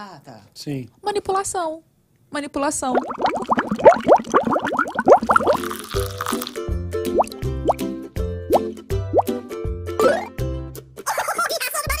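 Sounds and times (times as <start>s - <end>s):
cartoon bubble popping: 2.8s - 7.9s, 8.5s - 9.4s.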